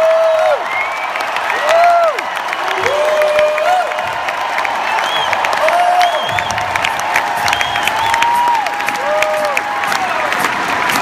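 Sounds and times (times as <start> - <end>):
crowd clapping and cheering: 0.0 - 11.0.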